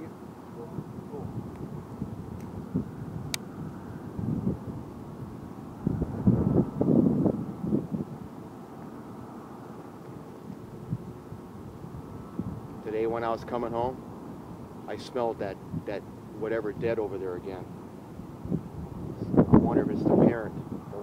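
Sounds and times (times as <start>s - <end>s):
wind buffeting microphone: 0.0s - 8.4s, 10.4s - 21.0s.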